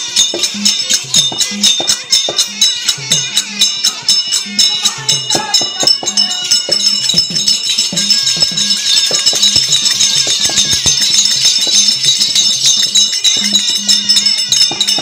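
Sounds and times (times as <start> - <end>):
ankle bells shaking: 0.0 - 15.0
fast drum strokes: 0.0 - 15.0
metallic jingling: 0.0 - 15.0.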